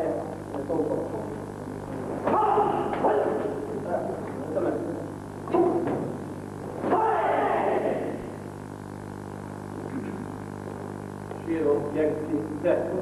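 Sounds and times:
fighters shouting: 0:02.2 - 0:03.5, 0:06.8 - 0:08.3.

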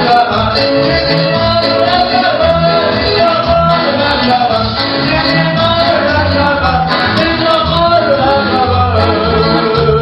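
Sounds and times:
loud backing music: 0:00.0 - 0:10.0
man singing into microphone: 0:00.0 - 0:10.0.

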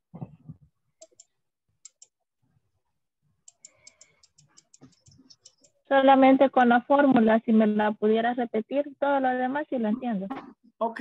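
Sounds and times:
faint computer clicks: 0:03.5 - 0:05.8.

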